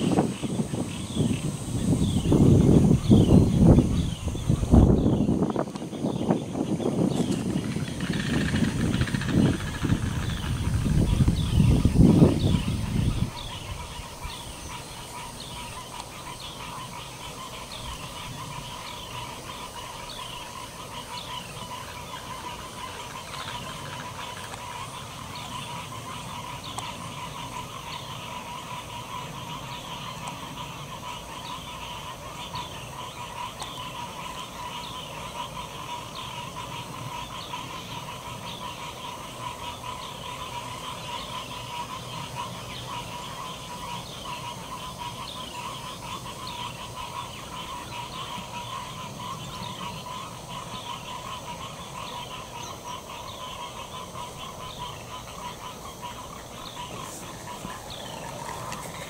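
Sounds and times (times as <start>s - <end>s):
continuous animal drone: 0.0s - 59.0s.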